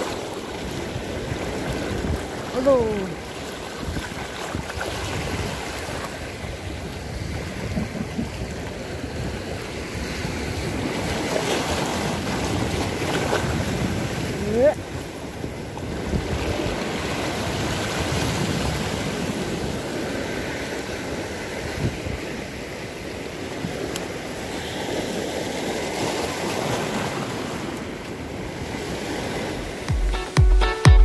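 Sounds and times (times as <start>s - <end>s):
waves washing over rocks: 0.0s - 29.9s
electronic dance music: 29.6s - 31.0s.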